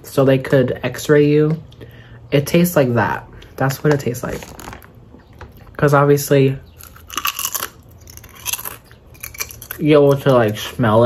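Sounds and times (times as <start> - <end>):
tortilla chip crunching: 4.2 - 5.0, 6.7 - 11.0.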